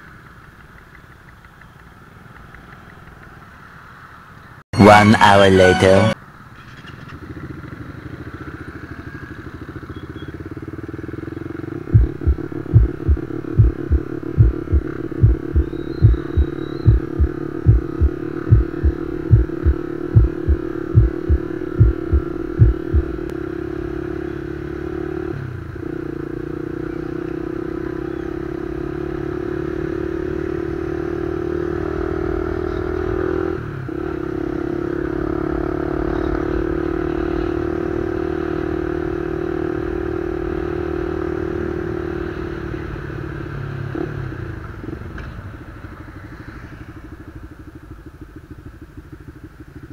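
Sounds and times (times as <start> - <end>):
motorcycle engine running: 7.0 - 33.2, 33.9 - 49.9.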